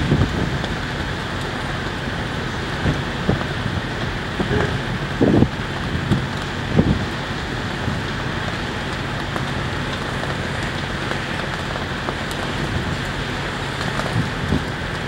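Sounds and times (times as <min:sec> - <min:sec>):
low wind buffets: 0:00.0 - 0:15.0
wind on microphone: 0:02.7 - 0:08.1, 0:14.0 - 0:14.8.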